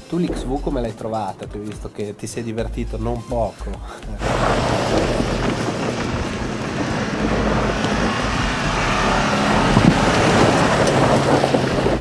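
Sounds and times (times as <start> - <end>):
car engine: 4.1 - 12.0
tyres spinning spraying snow: 4.2 - 12.0.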